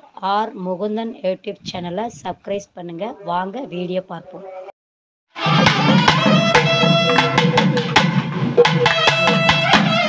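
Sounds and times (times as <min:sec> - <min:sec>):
reedy wind instrument melody: 0:05.3 - 0:10.0
drums struck with sticks: 0:05.4 - 0:10.0.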